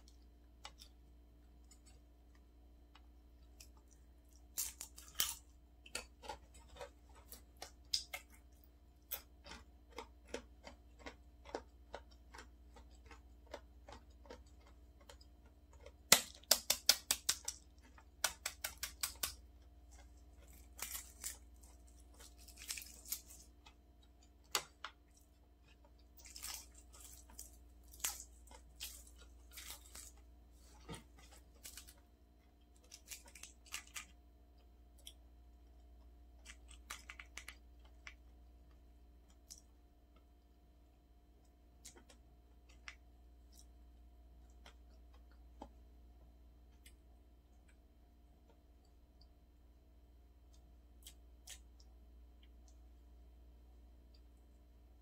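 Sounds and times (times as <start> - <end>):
faint steady hum: 0.0 - 55.0
chewing clicks: 3.0 - 21.1
eggshell cracking taps: 16.1 - 19.4
eggshell peeling crackle: 16.1 - 25.1.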